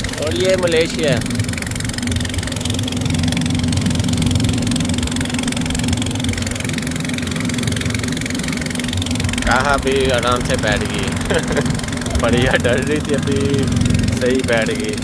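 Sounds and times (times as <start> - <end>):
boat engine humming: 0.0 - 15.0
water rushing: 0.0 - 15.0
wind: 0.0 - 15.0
person speaking: 9.4 - 15.0.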